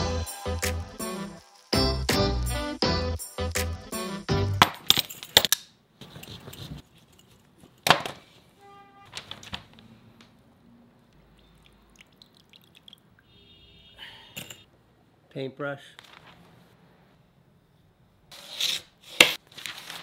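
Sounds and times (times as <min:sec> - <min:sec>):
faint handling sounds: 0:06.0 - 0:08.5
knife cutting through lemon: 0:18.3 - 0:19.4.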